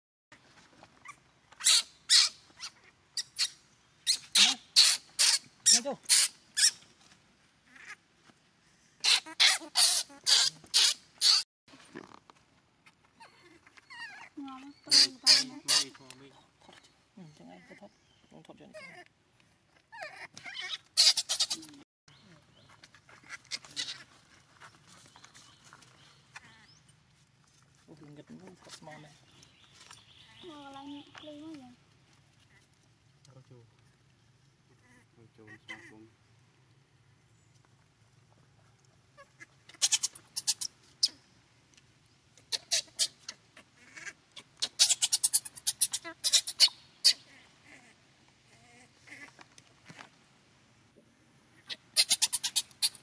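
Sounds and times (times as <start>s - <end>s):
baby monkey shrill cries: 1.6s - 6.8s, 9.0s - 11.4s, 13.2s - 16.0s, 19.9s - 21.7s, 39.8s - 41.2s, 42.5s - 43.3s, 44.0s - 47.9s, 51.6s - 53.0s.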